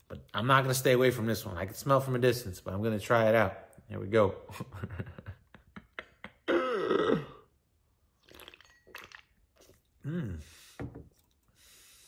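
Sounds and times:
man's throat sound: 6.4s - 7.5s
faint gulping: 8.2s - 11.5s.

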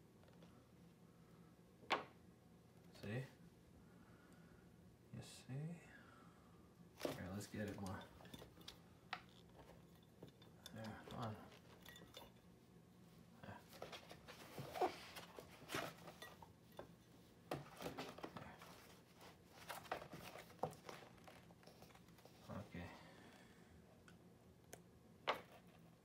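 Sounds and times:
paper rustling: 13.7s - 16.3s, 17.6s - 22.6s.

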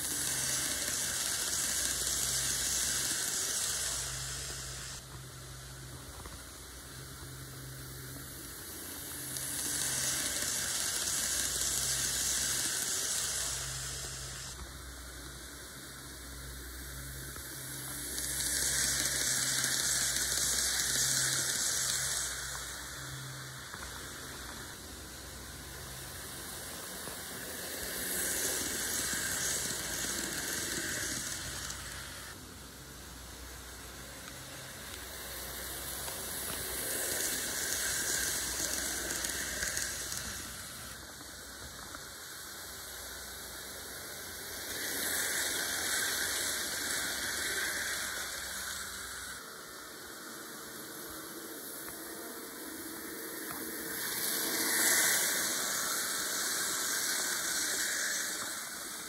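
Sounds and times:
model train rolling whir: 0.0s - 59.0s.

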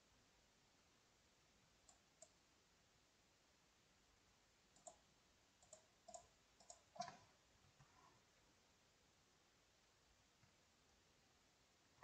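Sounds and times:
keyboard and mouse clicks: 1.8s - 2.4s, 4.8s - 5.0s, 5.6s - 7.3s.

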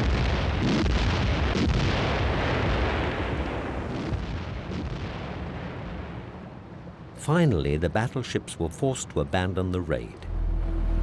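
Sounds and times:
distant naval gunfire and explosions: 0.0s - 7.3s.

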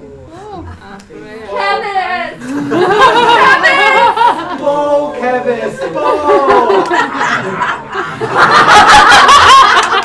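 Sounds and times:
roomful of people laughing: 2.3s - 10.0s.

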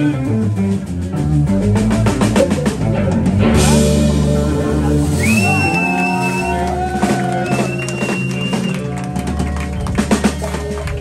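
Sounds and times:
electric guitar lead bending notes: 0.0s - 8.7s
blues band playing: 0.0s - 11.0s
electric bass: 0.0s - 11.0s.

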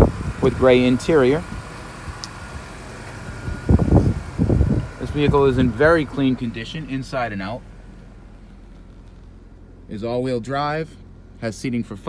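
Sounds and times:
rumbling microphone noise: 3.2s - 9.4s.

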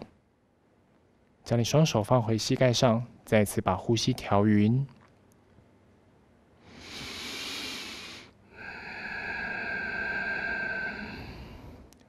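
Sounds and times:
close breathing into microphone: 6.6s - 11.9s.

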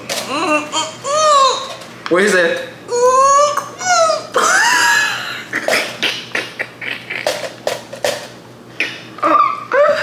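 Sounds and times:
person whining cries of disgust: 0.3s - 1.7s, 2.9s - 5.4s.

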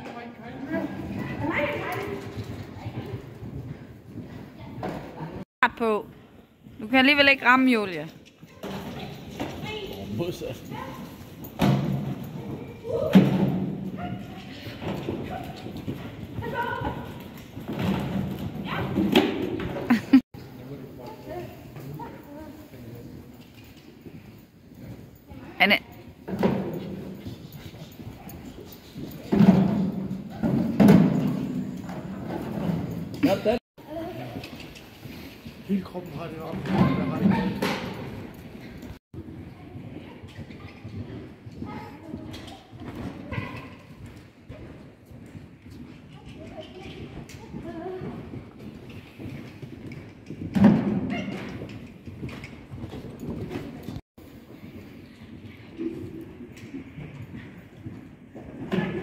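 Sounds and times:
horse hoofbeats on sand: 8.6s - 19.9s, 21.1s - 59.0s.

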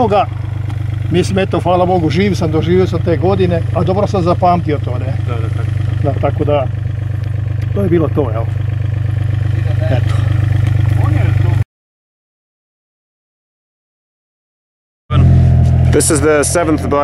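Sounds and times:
diesel engine running: 0.0s - 11.6s, 15.1s - 17.0s.

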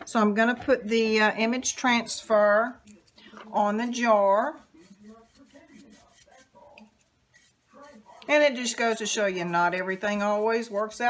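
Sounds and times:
brush working in a bowl: 0.3s - 11.0s.

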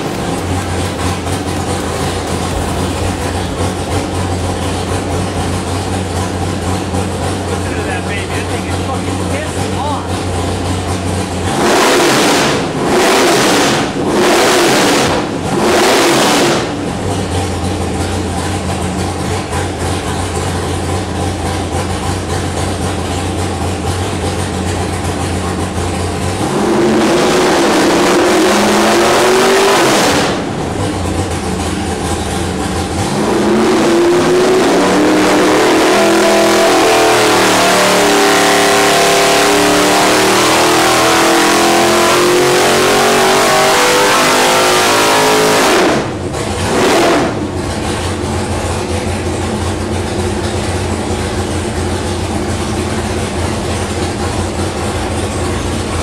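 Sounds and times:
engine revving and idling: 0.0s - 56.0s.

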